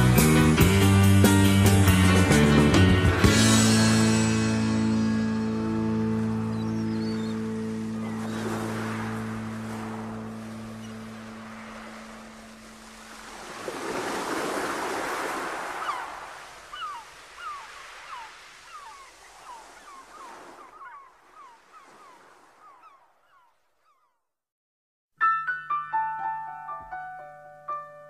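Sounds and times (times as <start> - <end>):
held music chord: 0.0 - 12.9
sea surf sound effect: 0.2 - 23.4.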